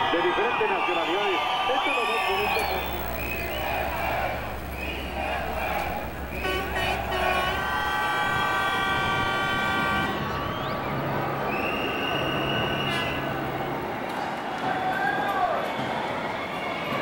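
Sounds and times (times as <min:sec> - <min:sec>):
large street crowd noise: 0:00.0 - 0:17.0
higher thinner horn tone: 0:02.2 - 0:13.9
horn blast: 0:02.2 - 0:14.0.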